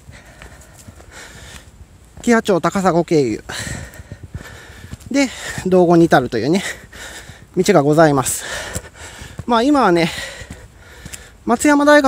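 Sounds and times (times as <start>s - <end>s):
footsteps crunching on dry soil: 0.0s - 12.0s.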